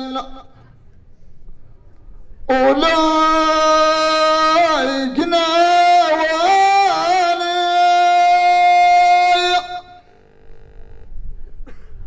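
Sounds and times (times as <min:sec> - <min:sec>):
man singing through pa system: 0:00.0 - 0:00.6, 0:02.4 - 0:10.2
faint murmur of voices: 0:00.2 - 0:02.6.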